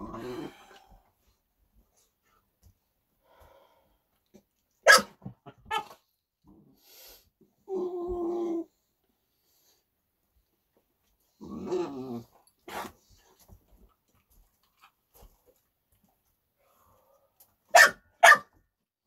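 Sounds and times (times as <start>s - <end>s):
dog growling: 0.0s - 0.8s, 11.3s - 13.0s
dog barking: 4.8s - 6.0s, 17.7s - 18.6s.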